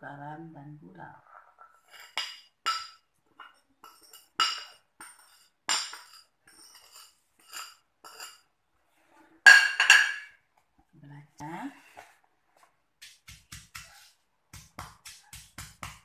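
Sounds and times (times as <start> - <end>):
bowl clattering: 9.4 - 10.4
porcelain bowl clinking on stone: 9.5 - 10.4.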